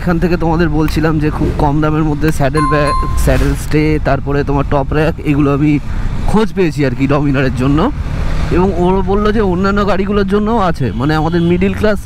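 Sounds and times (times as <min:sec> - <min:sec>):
man talking: 0:02.4 - 0:07.9.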